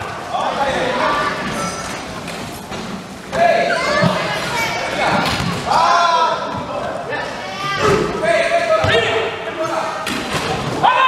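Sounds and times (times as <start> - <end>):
voices shouting in a hall: 0.0 - 11.0.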